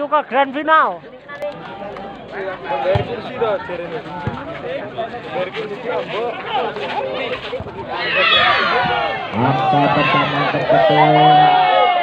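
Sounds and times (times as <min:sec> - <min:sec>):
spectators shouting: 0:07.9 - 0:12.0.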